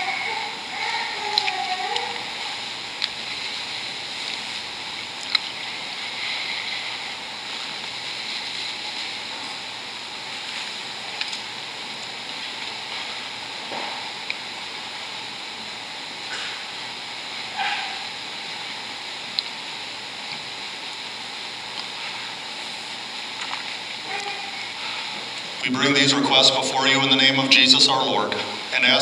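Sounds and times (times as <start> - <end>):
room tone hiss: 0.0 - 29.0.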